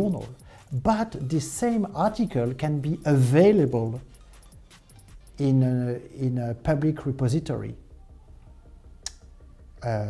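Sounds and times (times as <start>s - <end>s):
low steady hum: 5.4s - 10.0s
sharp click: 9.0s - 9.3s.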